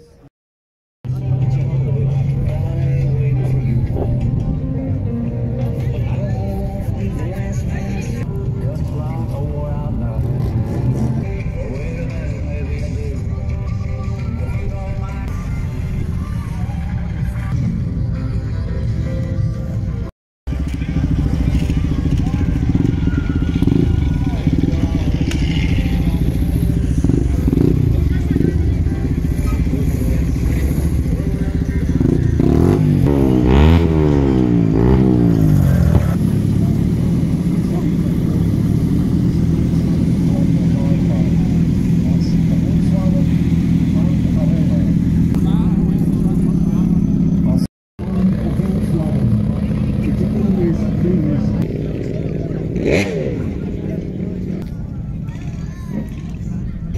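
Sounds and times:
car engine idling and revving: 19.0 - 56.9.

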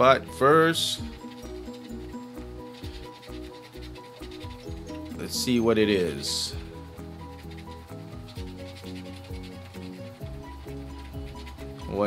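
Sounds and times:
background music with bass: 0.0 - 12.0
coin scratching a ticket: 0.0 - 12.0.

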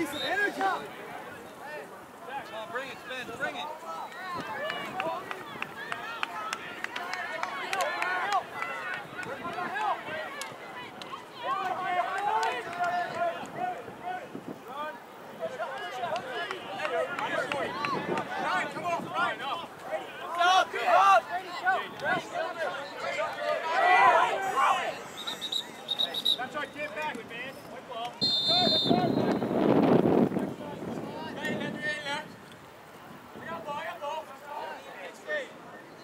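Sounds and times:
overlapping voices calling and chatting: 0.0 - 36.0.

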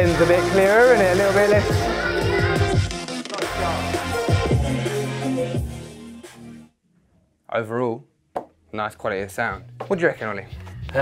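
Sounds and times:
electronic music with heavy bass: 0.0 - 6.7, 10.4 - 11.0.

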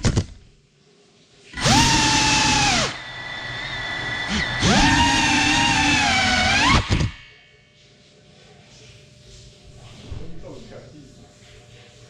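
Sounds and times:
drone motors whining: 1.6 - 7.2.

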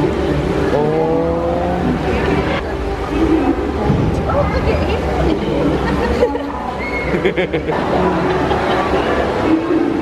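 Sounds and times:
steady low rumble: 0.0 - 6.7.

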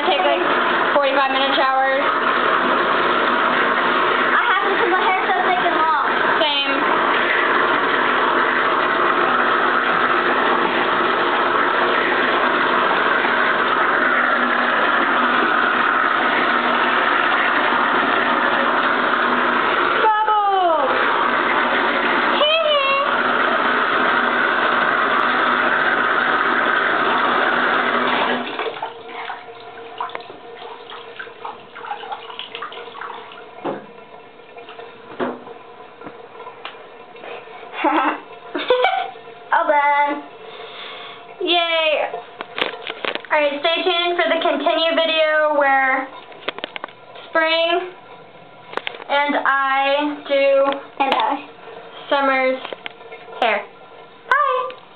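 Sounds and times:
tap running into bathtub: 0.0 - 39.3, 40.1 - 54.9.

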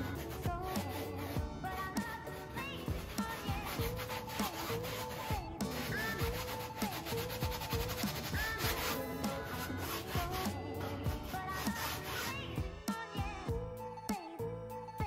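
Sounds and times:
paintbrush scrubbing on canvas: 0.0 - 12.5
background music with steady beat: 0.0 - 15.0.

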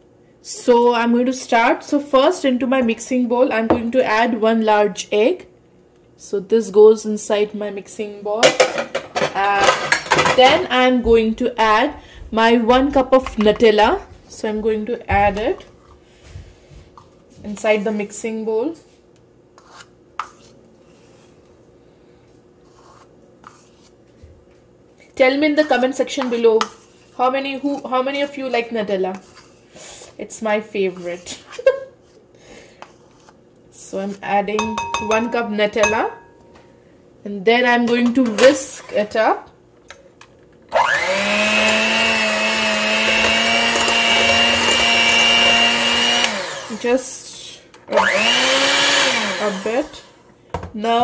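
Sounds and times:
low room hum: 0.0 - 45.6
spoon scraping spread from cup: 19.6 - 21.4, 22.6 - 24.0
electric hand mixer whining: 40.7 - 46.9, 47.9 - 50.2.

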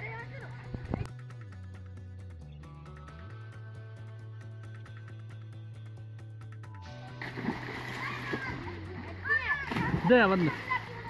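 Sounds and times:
water splashing: 7.2 - 11.0
children's voices: 7.9 - 11.0.

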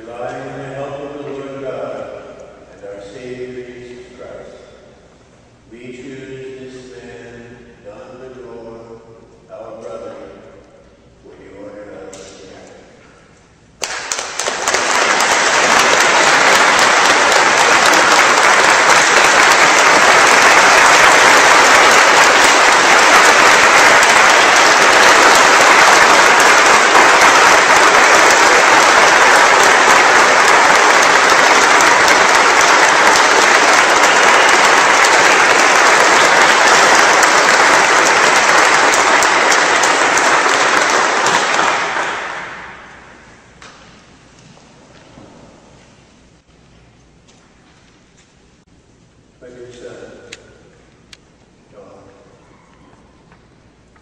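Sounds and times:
congregation applauding: 13.8 - 43.9.

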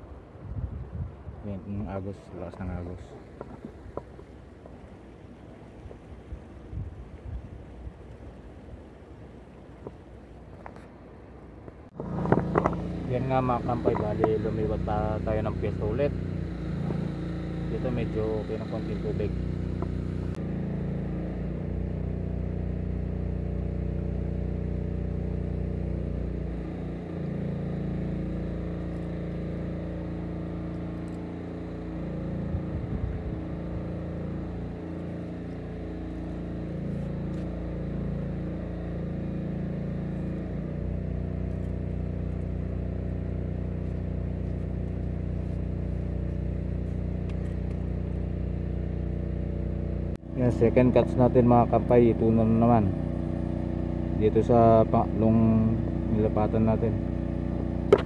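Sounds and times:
engine running steadily: 0.0 - 58.0.

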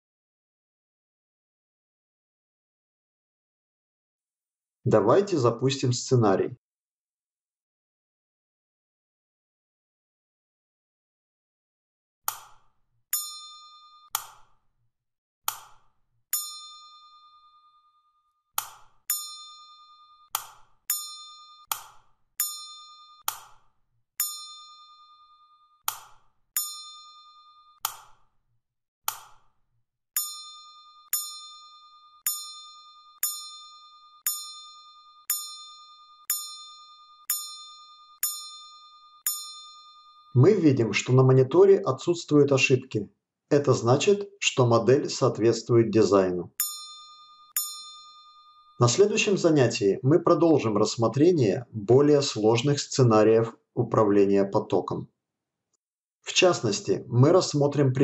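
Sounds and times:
sharp electronic clicks: 12.3 - 14.6, 18.6 - 25.1, 25.8 - 28.3
short ringing ding: 13.2 - 14.1, 16.4 - 18.0, 19.1 - 20.3, 20.9 - 21.7, 22.4 - 23.2, 24.2 - 25.8, 26.6 - 27.8, 30.2 - 40.4, 46.6 - 48.8.

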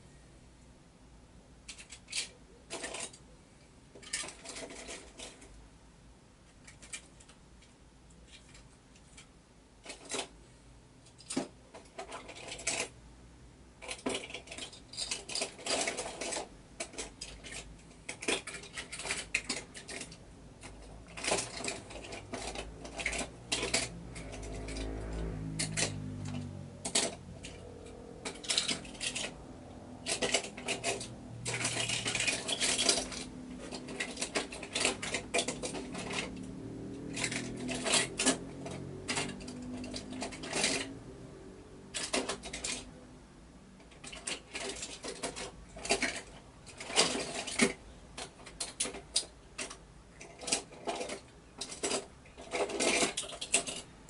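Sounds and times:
toy cars clinking and clattering: 1.6 - 3.3, 3.9 - 5.6, 6.5 - 10.4, 11.0 - 13.0, 13.8 - 43.0, 43.8 - 54.0.

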